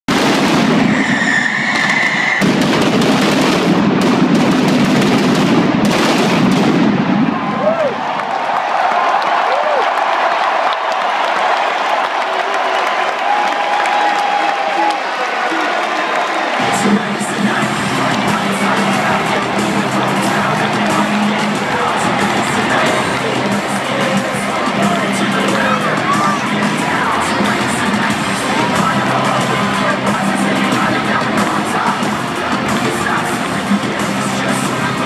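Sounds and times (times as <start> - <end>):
pyrotechnics blast: 0.1 - 7.5
crowd roaring and cheering: 0.1 - 35.0.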